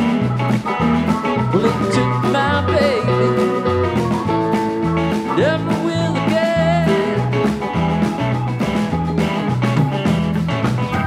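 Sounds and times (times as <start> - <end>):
bass and drums shuffle: 0.0 - 11.0
lead electric guitar: 0.0 - 11.0.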